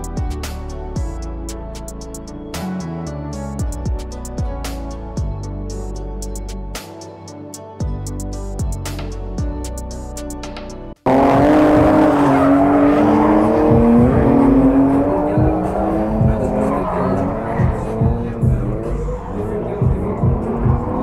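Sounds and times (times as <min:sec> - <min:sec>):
car engine revving high: 0:11.0 - 0:21.0.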